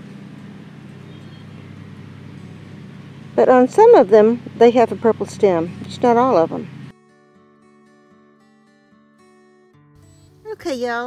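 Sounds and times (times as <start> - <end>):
low mechanical hum: 0.0 - 6.9.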